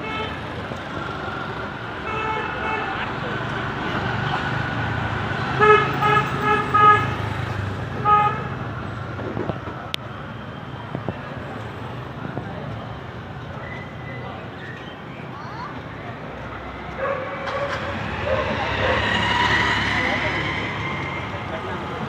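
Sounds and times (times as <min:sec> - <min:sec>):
vehicle horns honking: 0:00.0 - 0:00.5, 0:02.0 - 0:03.0, 0:05.5 - 0:07.3, 0:08.0 - 0:08.6
engine and traffic rumble: 0:00.0 - 0:22.0.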